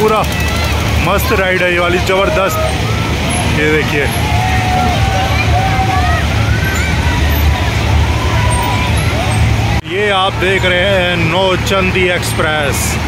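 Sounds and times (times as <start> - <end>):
crowd voices: 0.0 - 13.0
ride machinery rumble: 0.0 - 13.0.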